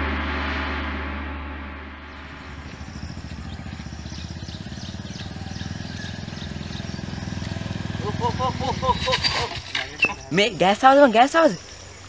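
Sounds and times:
motorcycle engine approaching: 0.0 - 10.4
faint high chirps: 2.2 - 12.0.

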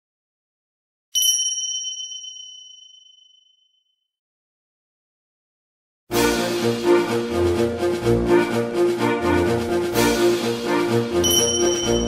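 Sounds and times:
high-pitched bell ding: 1.2 - 3.7, 11.2 - 12.0.

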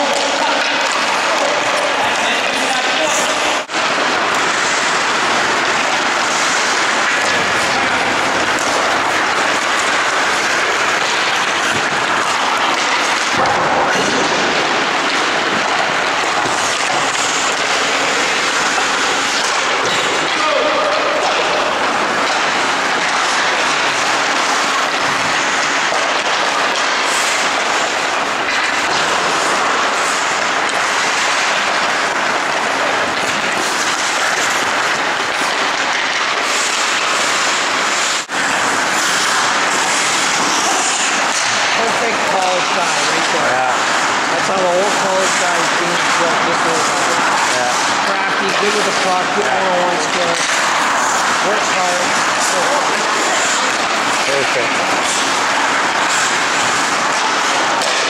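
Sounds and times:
voices: 0.0 - 3.7, 15.6 - 22.2, 39.2 - 55.3
skates and sticks on ice: 0.0 - 58.0.

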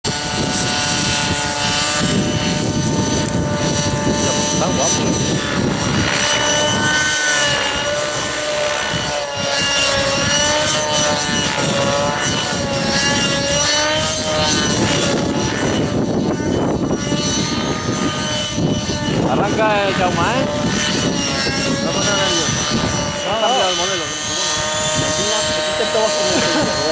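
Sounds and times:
model helicopter rotor whine: 0.0 - 26.9.

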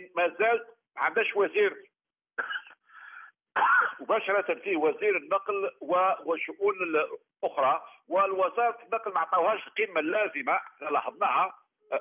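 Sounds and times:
man coughing over a telephone: 2.4 - 2.8, 3.6 - 4.1.

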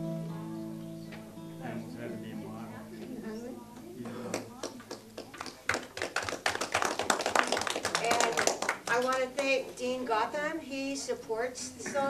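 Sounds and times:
acoustic guitar chord: 0.0 - 4.6
audience applauding: 4.0 - 9.5.

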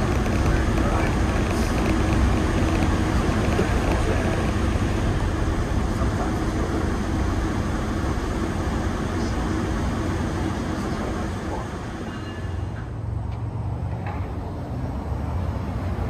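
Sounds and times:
low hum: 0.0 - 16.0
train running rumble: 0.0 - 16.0.

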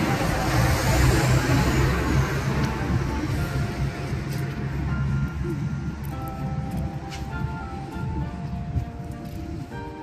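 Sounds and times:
steady low rumble: 0.0 - 10.0
background music with held notes: 1.6 - 10.0.

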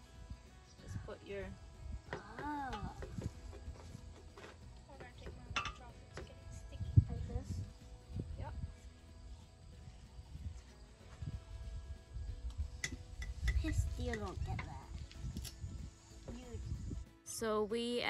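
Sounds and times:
wind rumble on microphone: 0.0 - 17.2
light clinks: 5.5 - 5.9.

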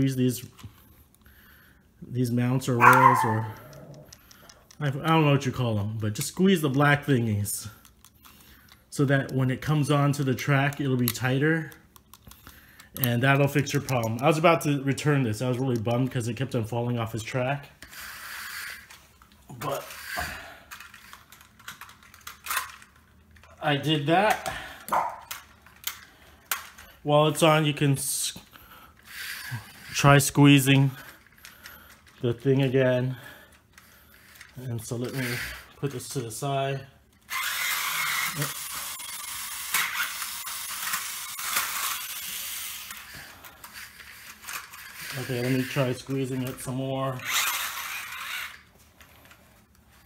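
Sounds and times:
plastic toy train clicks: 2.9 - 5.2, 10.4 - 14.4, 19.8 - 23.5, 24.2 - 26.8, 33.7 - 35.5, 37.3 - 48.6
plastic track rattling: 17.8 - 23.5, 37.3 - 48.6.

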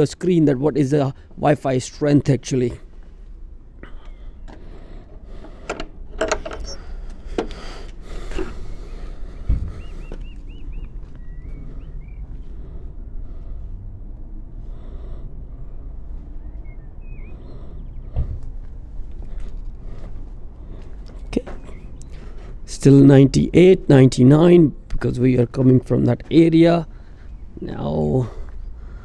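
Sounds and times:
wooden gate clicks and knocks: 5.5 - 6.7
bird chirps: 6.6 - 6.9, 8.6 - 12.4, 16.2 - 18.2, 21.4 - 22.2
wind rumble on microphone: 8.8 - 14.5, 15.5 - 22.1
footsteps thumping on paving: 9.4 - 11.6.

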